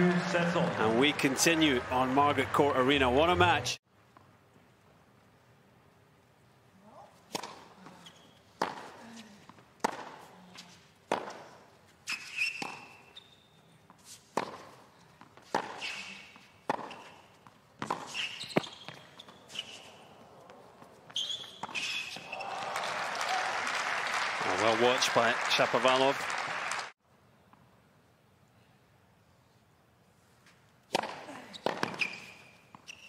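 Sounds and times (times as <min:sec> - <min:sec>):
crowd applause and cheering: 0:00.0 - 0:03.8, 0:22.2 - 0:27.0
racquet striking tennis ball: 0:07.3 - 0:07.7, 0:08.6 - 0:09.0, 0:09.8 - 0:10.2, 0:11.1 - 0:11.6, 0:14.3 - 0:14.8, 0:15.4 - 0:16.0, 0:16.6 - 0:17.2, 0:30.9 - 0:32.3.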